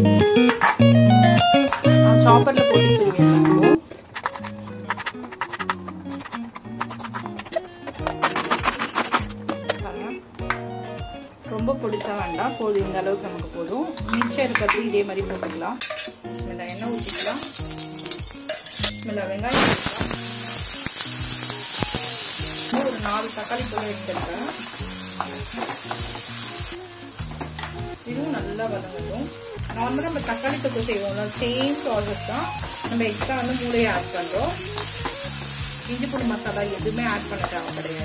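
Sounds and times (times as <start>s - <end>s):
spatula scraping a pan: 4.2s - 9.3s
hot oil sizzling in a pan: 16.6s - 18.9s, 19.5s - 38.0s.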